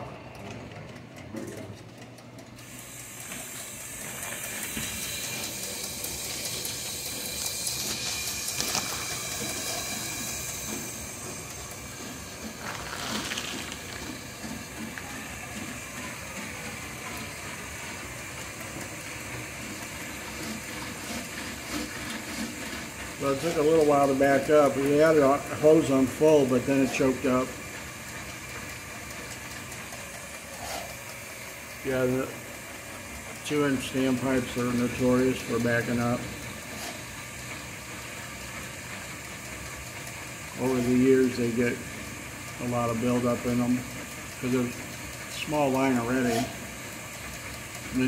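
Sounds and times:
hose water rushing into drain: 2.7 - 27.6.

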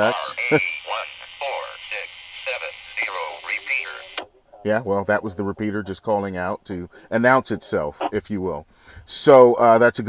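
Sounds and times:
narrow-band voice from radio speaker: 0.0 - 4.7.

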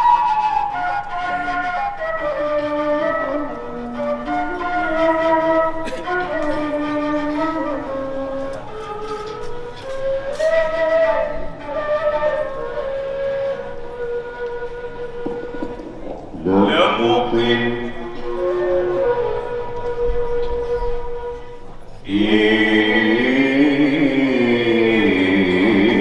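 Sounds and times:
bamboo flute melody: 0.0 - 26.0
voice on microphone: 16.0 - 18.3.

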